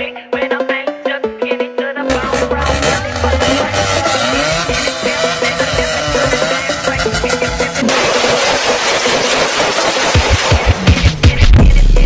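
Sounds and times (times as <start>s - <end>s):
background music: 0.0s - 12.0s
car exhaust rushing: 2.1s - 10.5s
electronic bass drum kicks: 10.3s - 12.0s.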